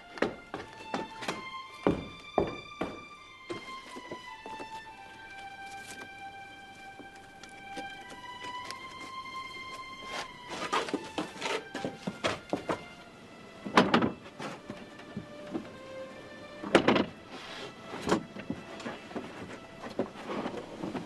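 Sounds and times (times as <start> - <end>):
dramatic film score music: 0.0 - 20.2.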